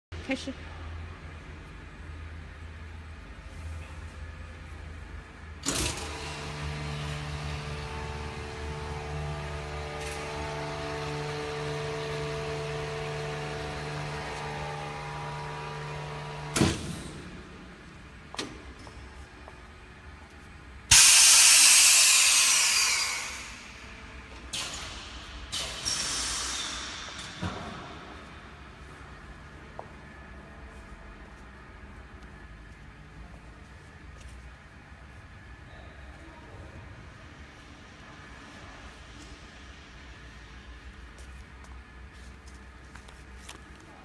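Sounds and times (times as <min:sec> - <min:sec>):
vacuum pump running: 0:05.6 - 0:18.4, 0:20.9 - 0:24.6
air rushing hiss: 0:20.9 - 0:24.0, 0:25.5 - 0:27.4.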